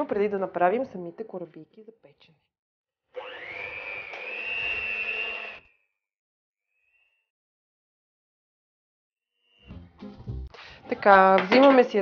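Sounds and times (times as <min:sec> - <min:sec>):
electric hand mixer whining: 0:03.1 - 0:05.8.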